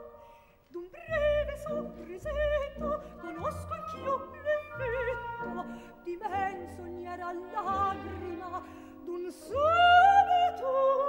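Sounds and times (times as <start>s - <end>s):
operatic soprano singing: 0.0s - 11.0s
orchestral accompaniment: 1.2s - 10.5s.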